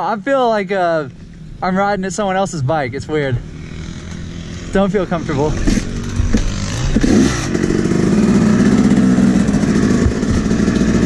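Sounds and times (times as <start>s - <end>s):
two-stroke dirt bike engine: 3.4s - 11.0s.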